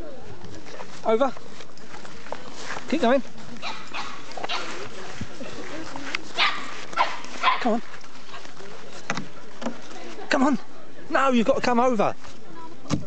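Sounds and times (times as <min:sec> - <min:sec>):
dog barking: 0:03.6 - 0:04.7, 0:06.4 - 0:07.8.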